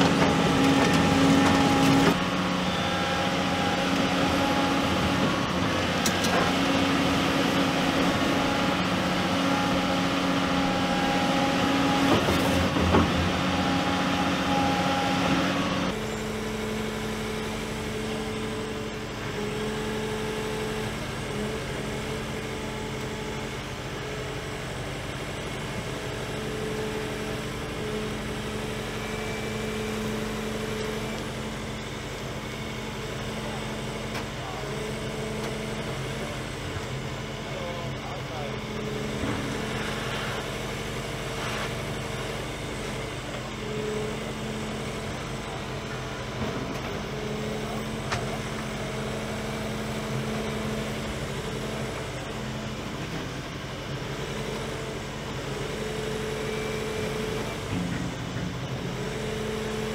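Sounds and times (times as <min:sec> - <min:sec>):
excavator digging sand: 0:00.0 - 0:24.2, 0:24.9 - 0:59.9
excavator diesel engine and hydraulics: 0:00.0 - 0:59.9.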